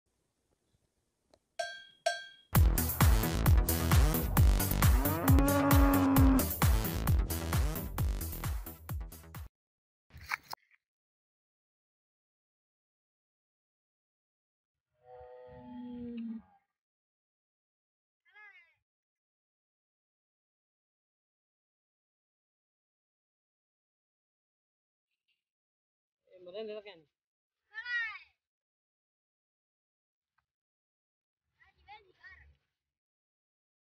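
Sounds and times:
bell-like strikes: 1.6 - 2.6
electronic music with thumping beat: 2.6 - 9.4
high-pitched animal call: 5.0 - 6.5.

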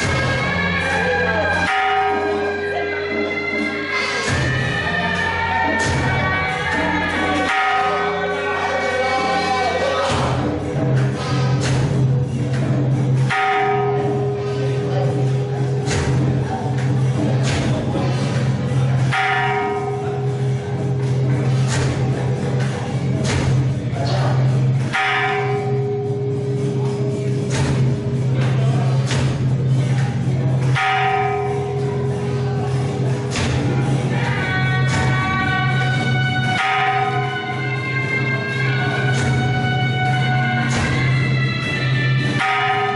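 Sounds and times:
background music: 0.0 - 42.9
steady low drone: 0.0 - 42.9.

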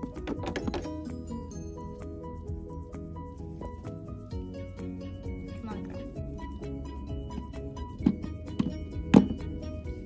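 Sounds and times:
plastic toys knocking: 0.0 - 1.1, 7.3 - 9.5
background music: 0.0 - 10.0.

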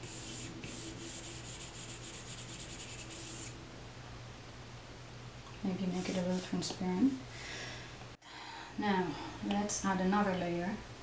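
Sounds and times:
stylus scratching on glass screen: 0.0 - 3.6, 5.8 - 6.6.

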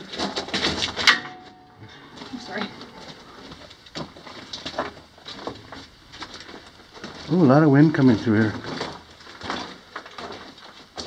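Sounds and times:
soft footsteps: 0.0 - 11.0.

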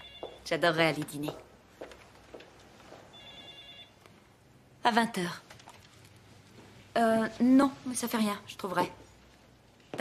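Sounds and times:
electronic telephone ringing: 0.0 - 0.4, 3.1 - 4.0.

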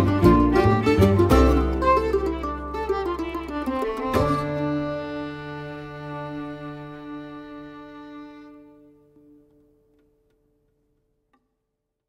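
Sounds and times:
string band chord: 0.0 - 9.3.

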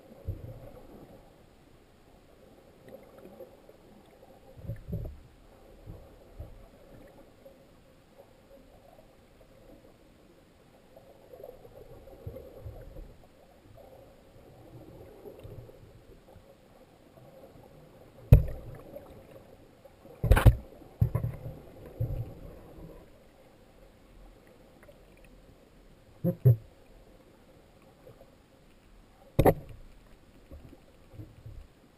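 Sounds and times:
underwater sloshing water: 0.0 - 31.9.

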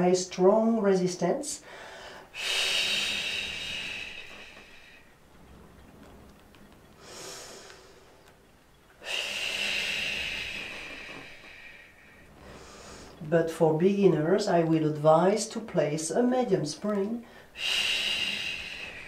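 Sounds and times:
woman inhaling: 1.6 - 5.2, 7.0 - 8.4, 9.0 - 13.3, 17.2 - 19.0.

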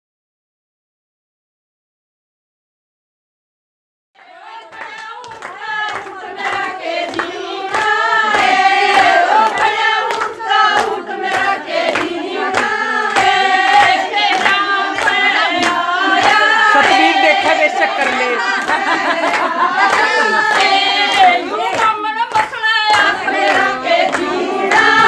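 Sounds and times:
women singing folk song: 4.2 - 25.0
hand claps: 4.5 - 25.0.

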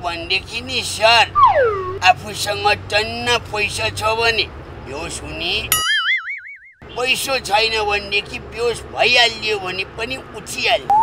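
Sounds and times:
people talking: 0.0 - 5.7, 6.9 - 11.0
cartoon boing sound effect: 1.4 - 2.0, 5.8 - 6.8.

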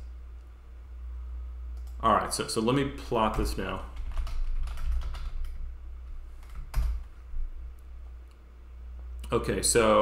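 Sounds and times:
keyboard typing: 3.2 - 5.6, 6.4 - 7.1.

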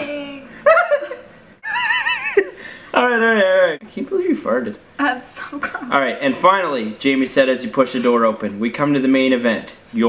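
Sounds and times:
high-pitched squealing laughter: 0.6 - 2.6.

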